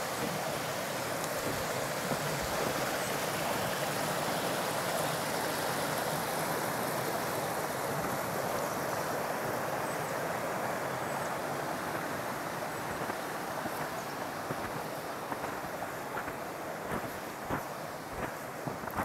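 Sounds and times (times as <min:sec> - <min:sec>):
creek running over rocks: 0:00.0 - 0:19.0.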